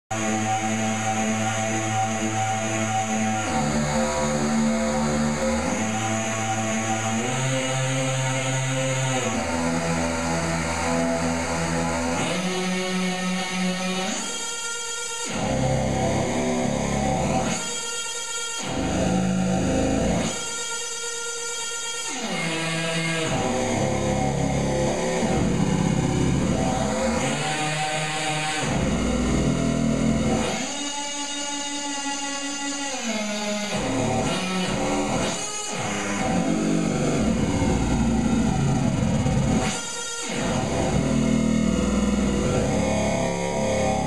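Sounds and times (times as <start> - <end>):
glitchy electronic drone: 0.1 - 14.5, 15.2 - 17.8, 18.6 - 20.8, 22.0 - 44.0.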